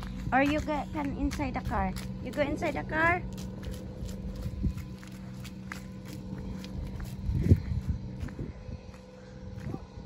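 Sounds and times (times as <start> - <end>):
faint low hum: 0.0 - 10.0
footsteps on wet asphalt: 0.0 - 10.0.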